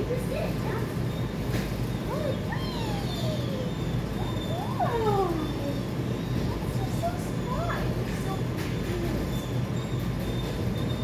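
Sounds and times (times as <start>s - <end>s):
dog whining: 0.1s - 11.0s.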